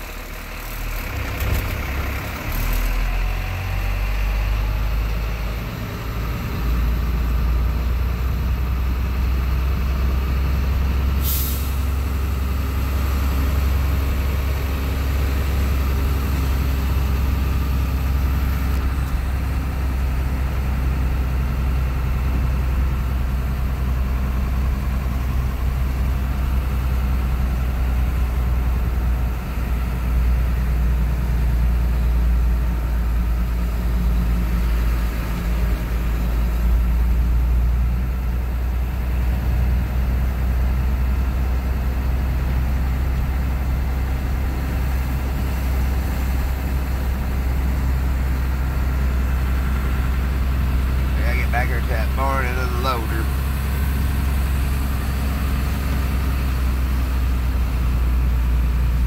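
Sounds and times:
truck engine droning: 0.0s - 59.0s.

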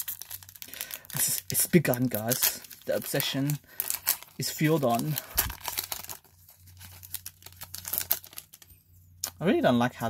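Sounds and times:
foil wrapper crinkling and tearing: 0.0s - 9.4s.

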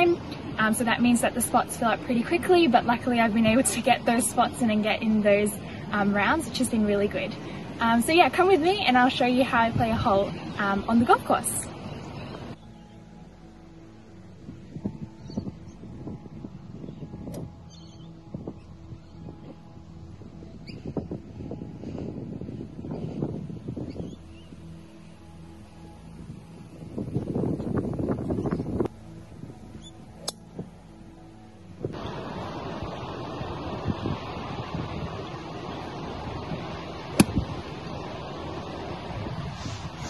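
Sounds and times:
wind buffeting microphone: 0.0s - 12.6s, 13.9s - 40.0s.

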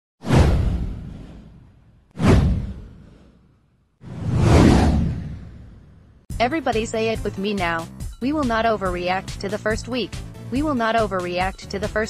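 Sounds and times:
deep boom: 0.2s - 3.2s, 4.1s - 6.2s
downward whoosh: 4.0s - 5.9s.

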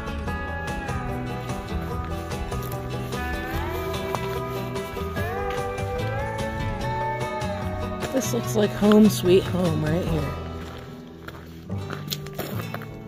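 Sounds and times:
music with sliding held notes: 0.0s - 13.0s.

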